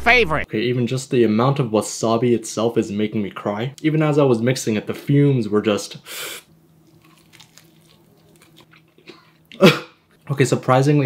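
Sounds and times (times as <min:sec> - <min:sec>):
person crunching and chewing food: 0:06.8 - 0:09.6.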